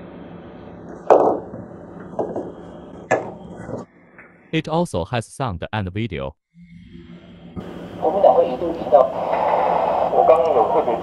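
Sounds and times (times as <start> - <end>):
steady hiss: 7.6 - 11.0.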